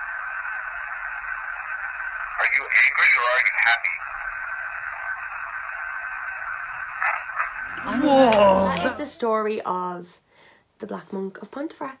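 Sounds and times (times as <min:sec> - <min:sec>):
recorder hiss with faint whine: 0:00.0 - 0:12.0
brief faint voice-like sound: 0:07.7 - 0:09.0.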